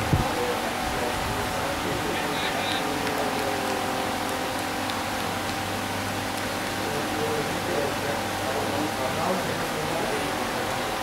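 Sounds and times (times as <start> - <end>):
distant indistinct voices: 0.0 - 11.0
outdoor background hiss: 0.0 - 11.0.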